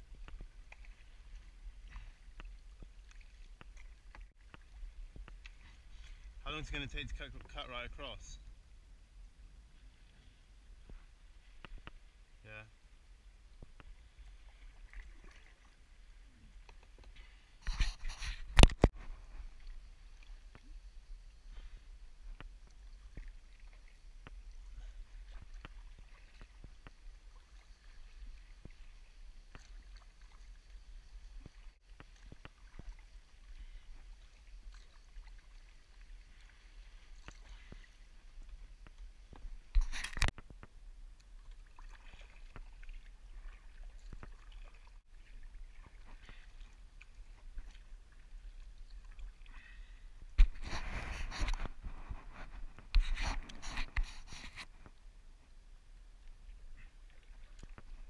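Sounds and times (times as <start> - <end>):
kayak paddle strokes in water: 0.0 - 8.5, 9.8 - 12.4, 13.2 - 58.0
water dripping from paddle blades: 0.1 - 6.4, 19.4 - 50.5.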